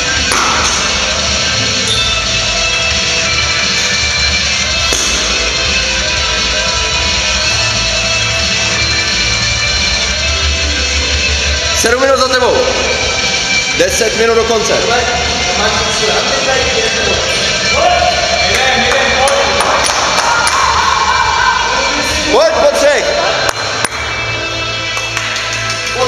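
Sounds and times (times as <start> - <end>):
pulsing bass: 0.0 - 26.0.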